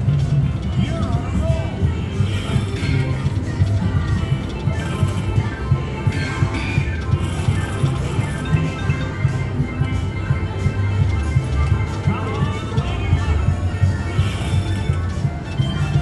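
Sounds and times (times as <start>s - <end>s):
slot machine game music: 0.0s - 16.0s.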